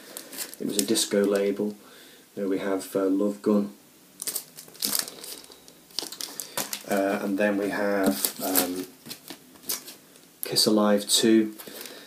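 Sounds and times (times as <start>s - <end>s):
plastic record sleeve crinkling: 0.0s - 1.8s, 4.2s - 10.6s, 11.5s - 12.0s.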